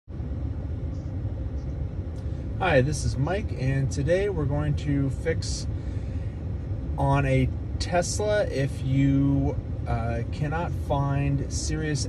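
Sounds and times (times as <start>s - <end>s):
car cabin rumble: 0.2s - 12.0s.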